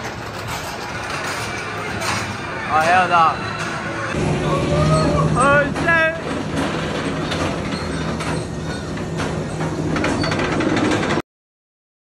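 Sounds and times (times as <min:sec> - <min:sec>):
roller coaster clattering on track: 0:00.0 - 0:11.2
people yelling and whooping: 0:03.0 - 0:05.7.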